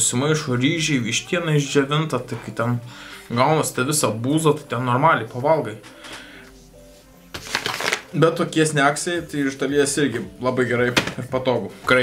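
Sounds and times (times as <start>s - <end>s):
faint background music: 0.0s - 12.0s
snack packet crinkling: 7.4s - 8.1s.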